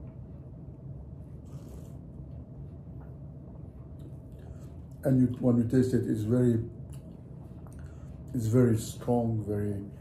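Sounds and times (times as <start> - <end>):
low steady room hum: 0.0 - 10.0.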